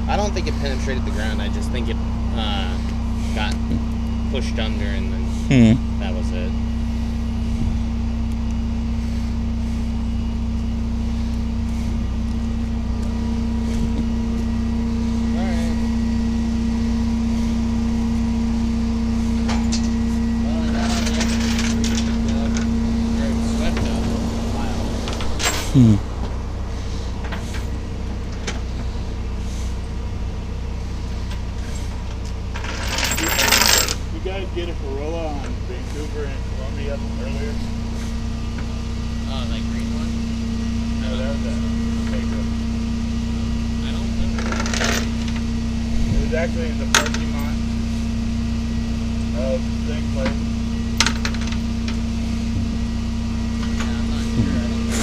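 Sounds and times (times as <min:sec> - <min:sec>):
truck engine idling: 0:00.0 - 0:55.0.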